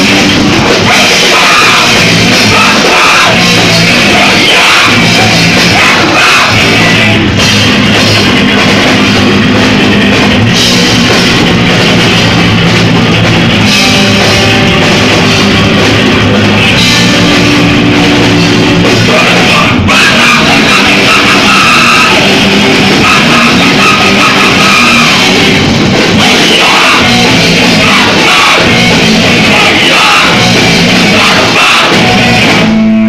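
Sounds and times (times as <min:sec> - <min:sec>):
rock band playing live: 0:00.0 - 0:33.0.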